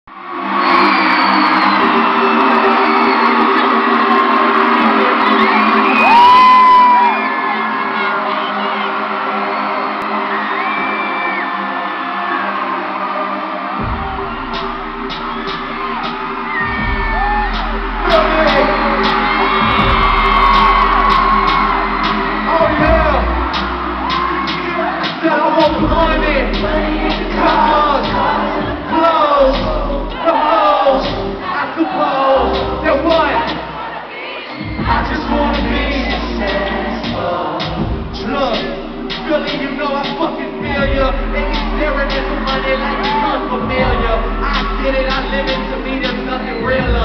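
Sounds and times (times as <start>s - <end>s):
crowd screaming and cheering: 0.1s - 47.0s
deep bass note: 13.8s - 24.4s, 25.7s - 28.8s, 34.8s - 47.0s.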